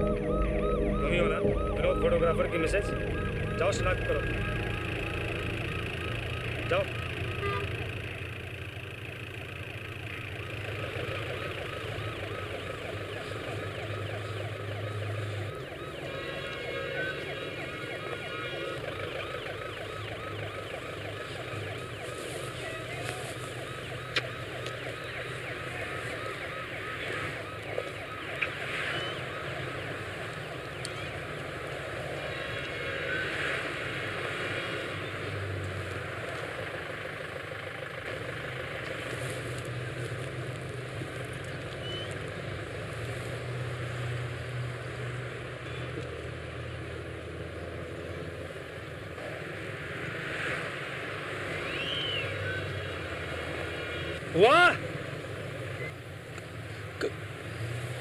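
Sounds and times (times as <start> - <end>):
loud rising shout or siren whoop: 0.0 - 7.5
low vehicle hum: 0.0 - 15.8.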